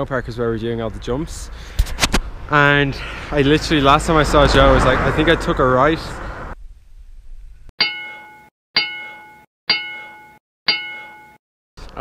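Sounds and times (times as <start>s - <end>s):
bell-like chime dings: 7.8s - 11.4s.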